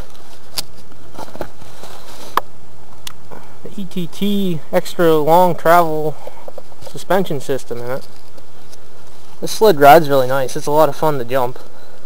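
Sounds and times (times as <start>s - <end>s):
footsteps in dry leaves: 0.0s - 2.4s
steady background hiss: 0.0s - 12.0s.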